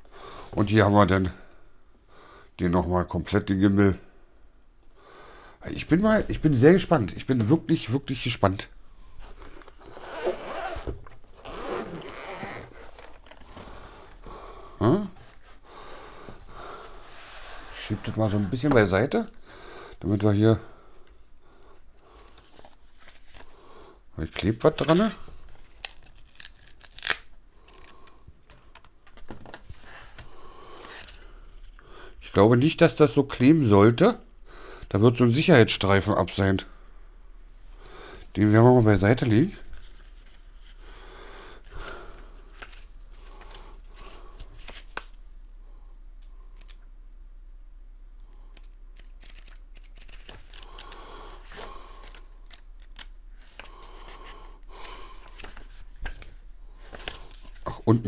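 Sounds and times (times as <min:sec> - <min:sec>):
soft rustling of paper: 0:05.7 - 0:20.4, 0:21.8 - 0:23.6, 0:24.2 - 0:31.8, 0:38.9 - 0:40.8, 0:41.6 - 0:45.2, 0:48.5 - 0:58.0
paper pages turning: 0:22.2 - 0:23.6, 0:24.6 - 0:31.2, 0:42.5 - 0:45.2, 0:49.0 - 0:57.8.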